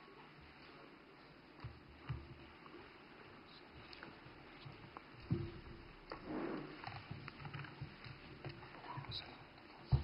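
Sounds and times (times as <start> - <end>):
soft knocks: 4.7 - 6.3, 6.9 - 10.0.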